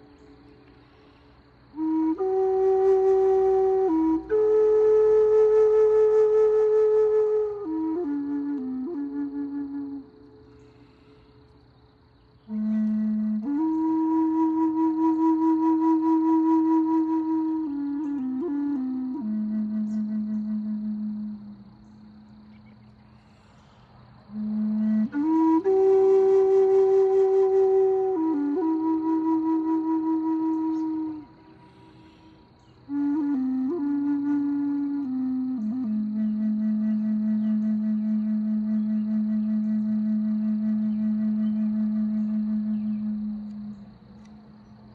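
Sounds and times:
faint birdsong chirps: 0.0 - 1.6, 10.3 - 13.0, 21.5 - 25.0, 30.4 - 33.0, 40.7 - 44.9
flute long low note: 0.0 - 11.6, 12.4 - 44.9.

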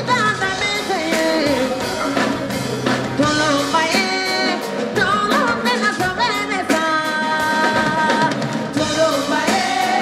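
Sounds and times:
band with drums: 0.0 - 10.0
women's vocal group singing: 3.2 - 10.0.

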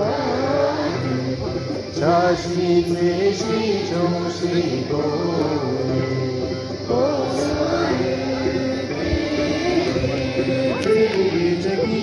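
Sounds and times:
group chant-like singing: 0.0 - 12.0
musical accompaniment: 0.0 - 12.0.

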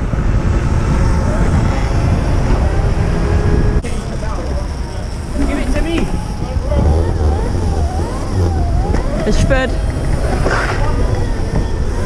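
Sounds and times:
wind buffeting microphone: 0.0 - 12.0
electric motor whine: 0.1 - 12.0.

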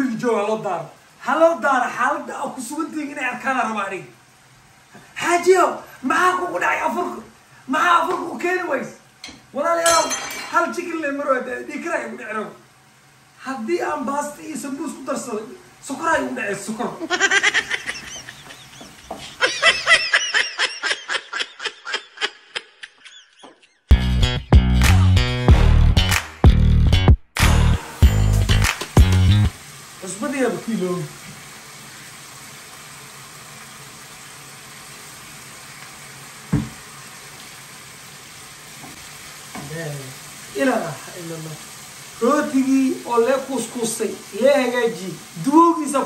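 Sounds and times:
food sizzling in a frying pan: 0.0 - 21.4, 27.6 - 46.0
high-pitched cackling: 17.0 - 23.9.

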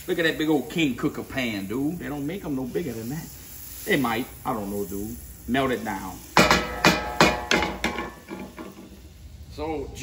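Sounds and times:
wooden spatula knocking on skillet: 6.4 - 8.9.

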